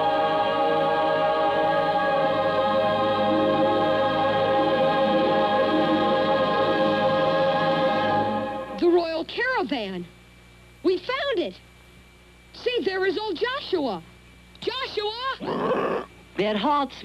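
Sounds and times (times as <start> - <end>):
choir holding chords: 0.0 - 8.8.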